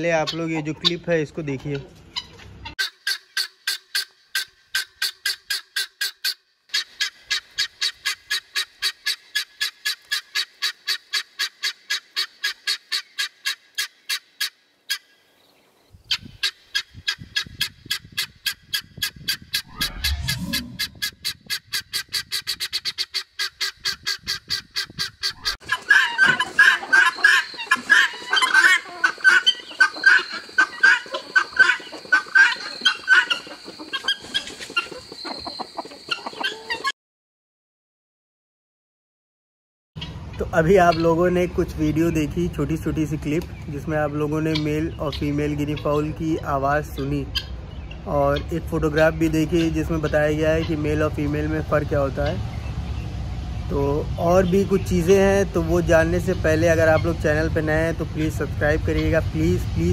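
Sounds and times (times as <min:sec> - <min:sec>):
guinea fowl calling: 0:00.0 - 0:15.2, 0:16.0 - 0:36.9, 0:40.0 - 0:41.3, 0:43.4 - 0:51.1, 0:55.6 - 0:57.6, 0:58.2 - 0:59.4.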